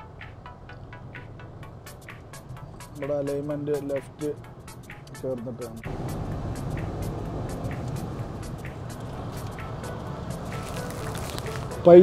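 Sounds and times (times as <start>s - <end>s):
vehicle road and engine noise: 0.0s - 12.0s.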